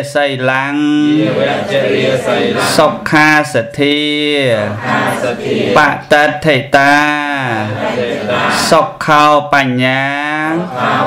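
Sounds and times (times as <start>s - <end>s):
man chanting: 0.0s - 10.8s.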